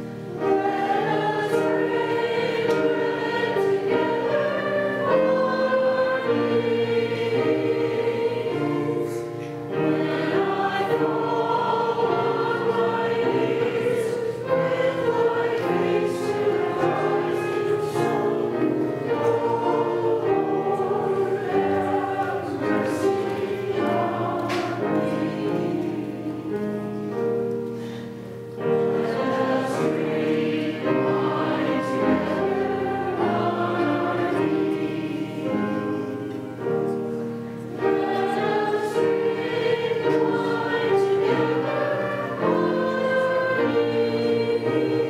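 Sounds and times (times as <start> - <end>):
group singing a slow hymn: 0.0 - 45.0.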